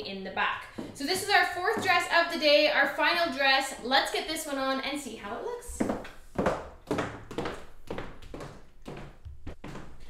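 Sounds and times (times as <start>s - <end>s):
high heels clicking on hard floor: 0.5s - 2.5s, 5.7s - 10.0s.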